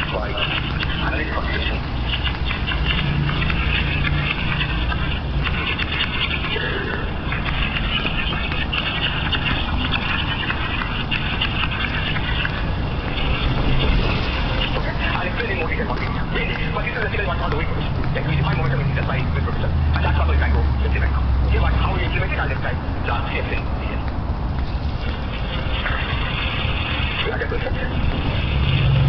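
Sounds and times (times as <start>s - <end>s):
deeper rumble: 0.0s - 29.0s
indistinct chatter of passers-by: 0.0s - 29.0s
steady traffic rumble: 0.0s - 29.0s.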